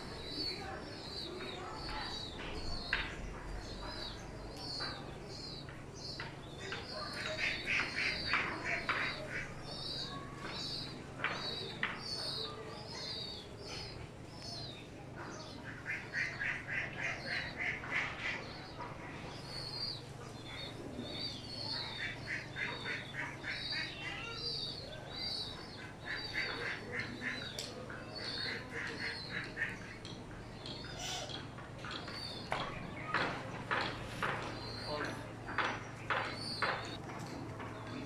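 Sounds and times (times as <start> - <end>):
young pigeons squeaky calls: 0.0 - 37.0.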